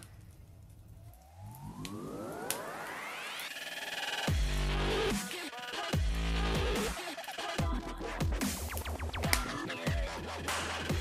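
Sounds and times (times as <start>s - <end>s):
synthesised rising sweep: 1.2s - 7.5s.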